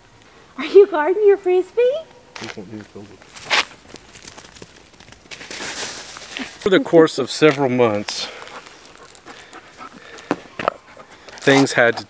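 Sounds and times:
dog panting: 8.3 - 12.0.

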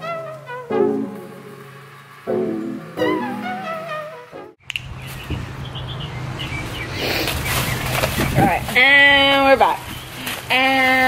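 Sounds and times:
brass music: 0.0 - 4.6
birds chirping: 4.6 - 10.9.

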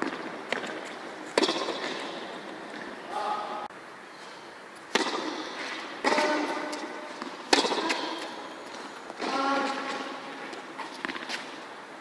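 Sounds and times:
tennis ball struck by rackets: 0.0 - 2.2, 4.9 - 8.4.

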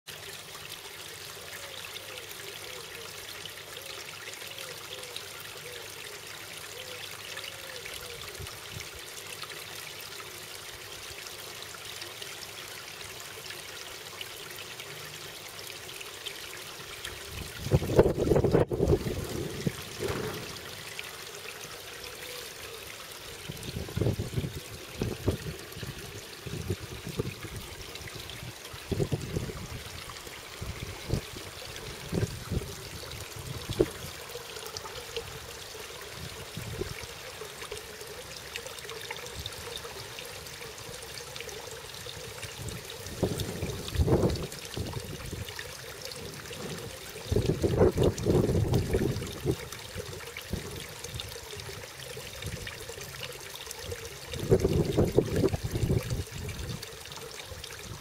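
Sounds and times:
water pouring into pond: 0.1 - 58.0.

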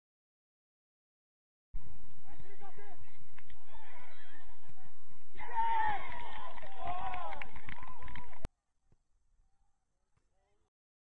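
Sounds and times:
distant shouting voices: 2.3 - 8.5.

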